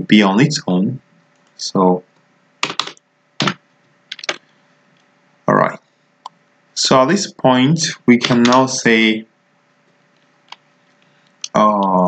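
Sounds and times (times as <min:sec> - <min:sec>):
computer keyboard keys clacking: 0:02.6 - 0:04.4, 0:08.2 - 0:08.7.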